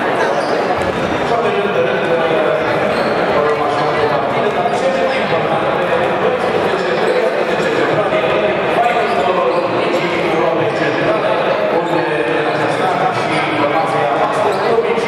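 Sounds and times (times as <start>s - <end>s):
crowd chattering: 0.0s - 15.0s.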